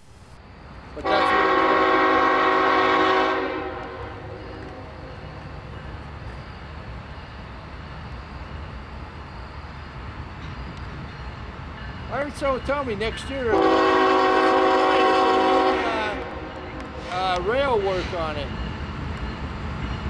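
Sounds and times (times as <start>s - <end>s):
train rumbling: 0.0s - 20.0s
locomotive air horn blast: 1.0s - 4.4s, 13.5s - 17.1s.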